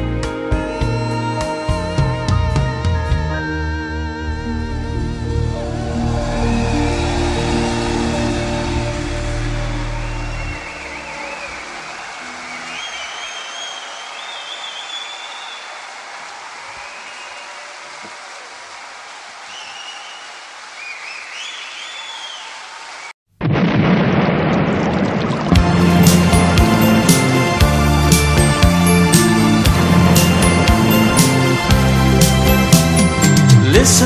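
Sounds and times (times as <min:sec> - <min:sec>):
music: 0:00.0 - 0:13.9, 0:25.6 - 0:34.0
high chirps: 0:05.9 - 0:15.8
steady rain: 0:15.1 - 0:23.1.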